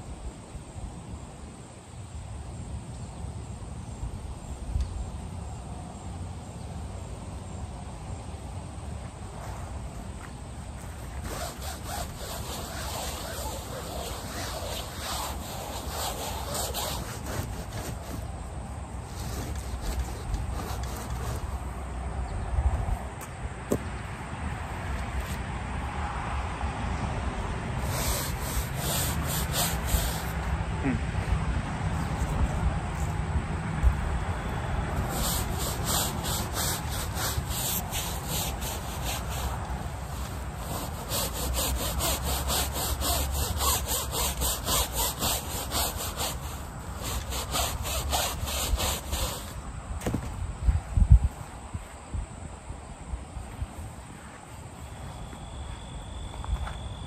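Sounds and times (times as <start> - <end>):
brush scrubbing a mat: 10.8 - 21.7, 27.8 - 30.5, 35.0 - 49.6.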